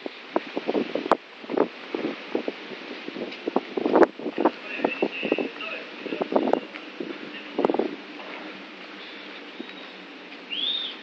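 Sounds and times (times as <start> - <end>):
freight wagons rolling on rails: 0.0 - 11.0
high squeal: 9.5 - 11.0.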